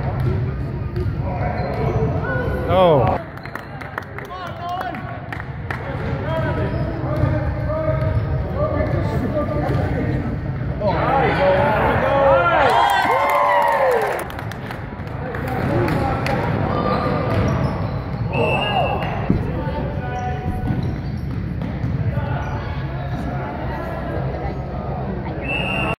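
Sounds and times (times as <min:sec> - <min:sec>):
high steady whistle: 0:18.3 - 0:19.1, 0:25.4 - 0:26.0.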